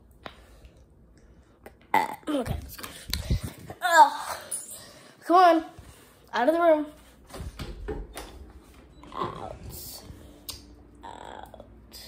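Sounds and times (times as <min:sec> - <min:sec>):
girl making wordless vocal sounds: 0:01.7 - 0:05.7, 0:09.1 - 0:12.0.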